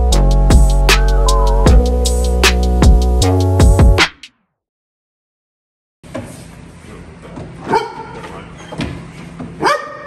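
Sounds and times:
dog barking: 7.7s - 8.3s, 9.6s - 10.0s.

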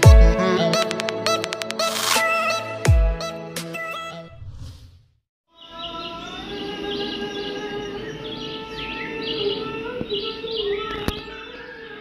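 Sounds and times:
small birds chirping: 5.5s - 12.0s.

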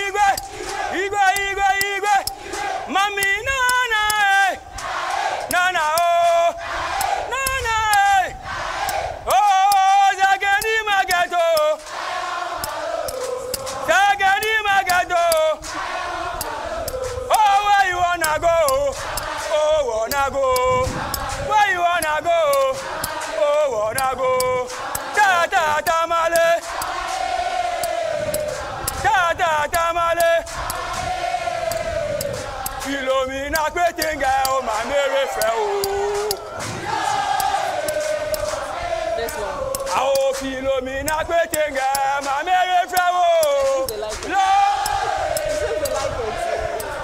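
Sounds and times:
sharp claps: 0.0s - 6.6s, 12.6s - 46.2s
group chanting in unison: 0.0s - 47.0s.

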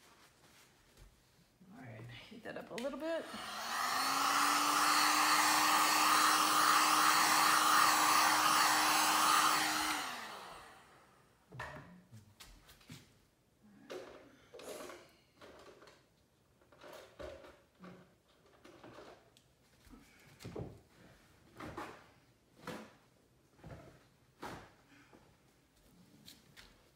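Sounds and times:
heat gun fan humming: 2.8s - 11.0s.

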